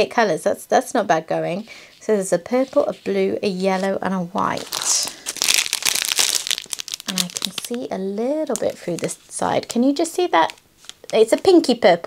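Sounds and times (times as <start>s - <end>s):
plastic wrapping crinkling: 2.5s - 11.8s.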